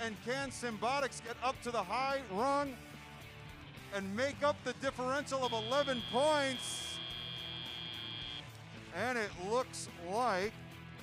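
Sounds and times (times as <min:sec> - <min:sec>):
background music: 0:00.0 - 0:11.0
buzzer high tone: 0:05.2 - 0:08.4.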